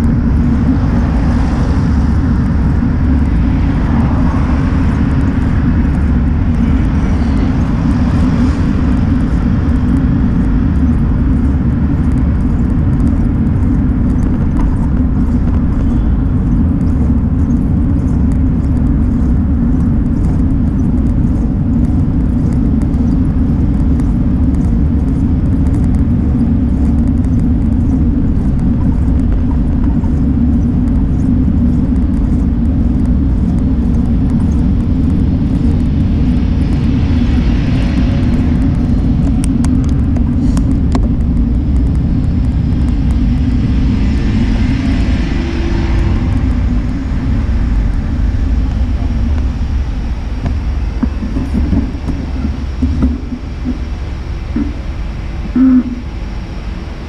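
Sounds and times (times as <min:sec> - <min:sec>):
road noise: 0:00.0 - 0:57.0
wind buffeting microphone: 0:00.0 - 0:57.0.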